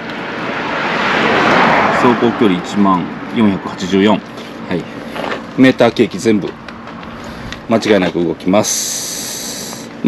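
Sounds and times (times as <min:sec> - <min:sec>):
vehicle approaching with rushing noise: 0:00.0 - 0:10.0.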